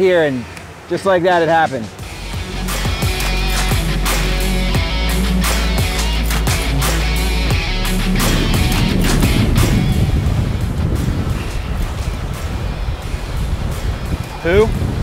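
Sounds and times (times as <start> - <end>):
boat rushing over water: 0.0 - 15.0
wind: 0.0 - 15.0
rock music: 2.0 - 14.0.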